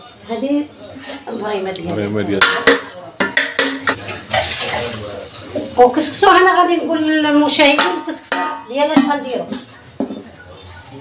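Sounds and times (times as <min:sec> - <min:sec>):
metal kitchenware clattering: 0:02.3 - 0:05.0, 0:05.6 - 0:10.4.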